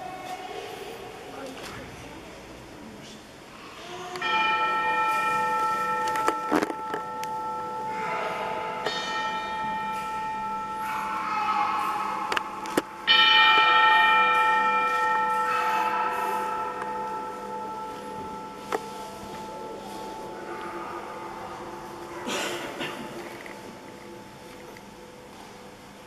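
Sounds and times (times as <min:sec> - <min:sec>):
church bells ringing: 0:04.1 - 0:25.5.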